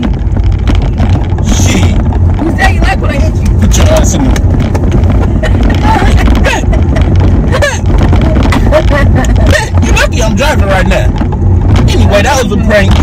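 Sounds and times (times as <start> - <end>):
car rumble: 0.0 - 13.0
people talking and laughing: 5.2 - 10.9.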